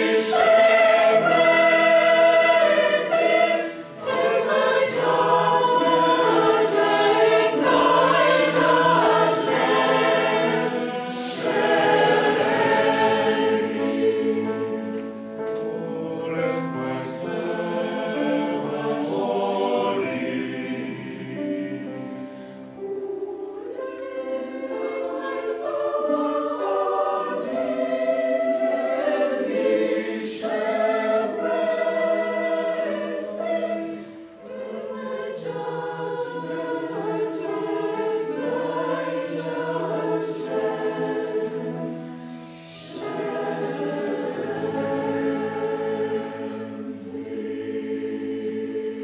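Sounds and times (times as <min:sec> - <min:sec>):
choir singing chords: 0:00.0 - 0:49.0.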